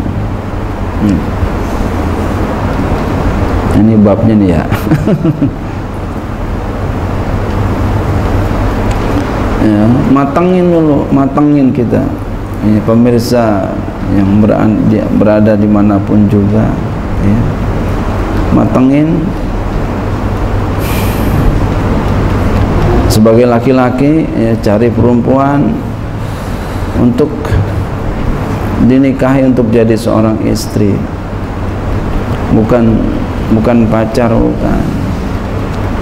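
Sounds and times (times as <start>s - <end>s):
background rumble and hiss: 0.0s - 36.0s
low hum: 0.0s - 36.0s
man speaking: 1.0s - 1.4s, 3.7s - 4.9s, 9.6s - 17.6s, 18.5s - 19.4s, 22.8s - 25.9s, 27.0s - 27.7s, 28.7s - 31.1s, 32.5s - 35.1s
man laughing quietly: 4.7s - 5.8s
low-pitched rumbling: 19.2s - 28.8s.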